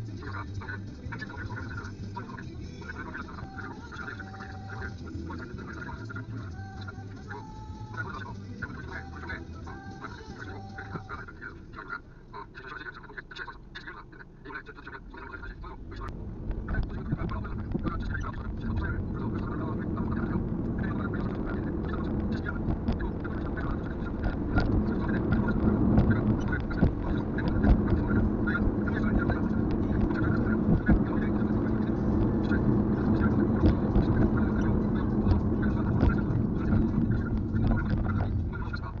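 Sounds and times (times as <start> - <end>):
road and engine noise in car: 0.0 - 39.0.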